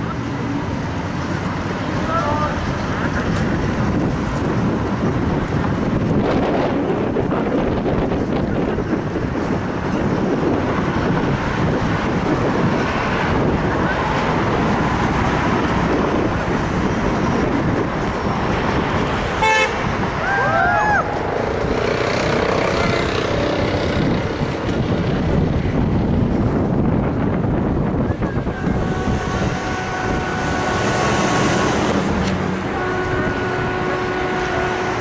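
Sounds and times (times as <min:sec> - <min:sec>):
city traffic noise: 0:00.0 - 0:35.0
car horn toot: 0:19.4 - 0:20.0, 0:28.3 - 0:32.0, 0:32.7 - 0:35.0
high whoops: 0:20.2 - 0:21.1.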